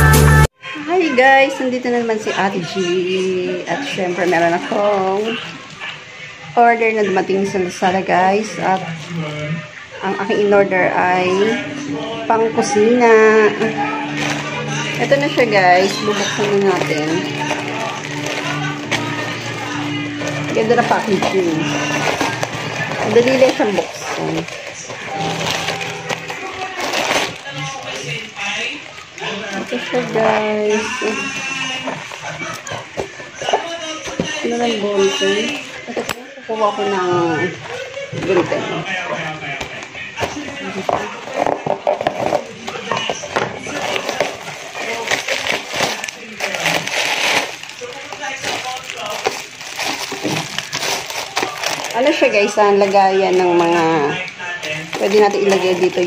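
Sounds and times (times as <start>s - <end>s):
plastic packaging crinkling: 12.6s - 56.0s.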